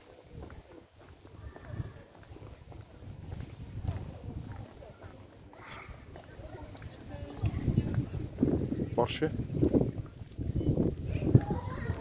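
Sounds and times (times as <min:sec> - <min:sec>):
faint voices: 0:00.0 - 0:12.0
footsteps: 0:00.0 - 0:12.0.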